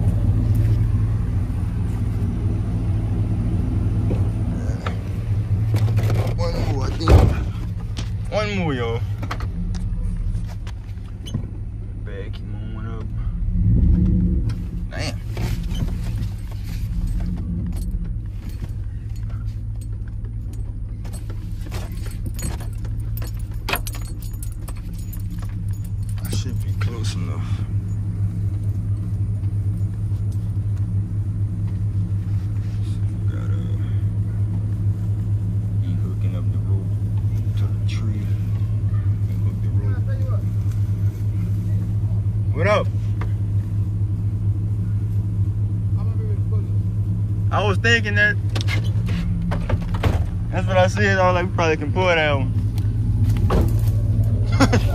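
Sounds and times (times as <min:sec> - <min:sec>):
truck engine idling: 0:00.0 - 0:54.9
keys jangling: 0:16.3 - 0:30.5.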